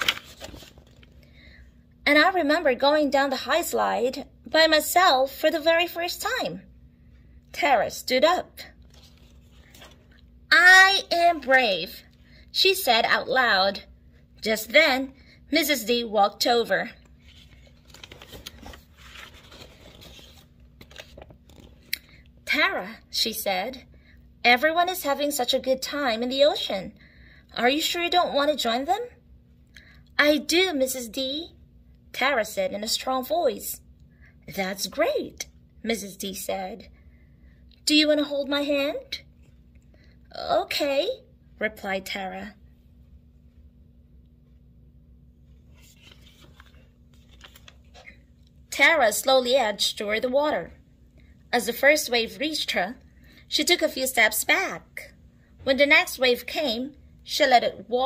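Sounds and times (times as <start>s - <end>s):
paper pages rustling: 0.0s - 1.4s, 8.7s - 10.3s, 17.0s - 22.0s, 45.5s - 48.2s
low steady hum: 0.0s - 58.0s.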